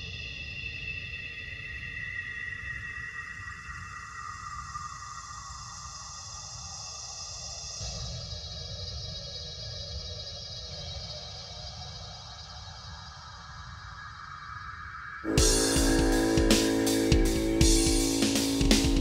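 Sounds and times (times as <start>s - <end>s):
ambient synthesizer pad: 15.3s - 19.0s.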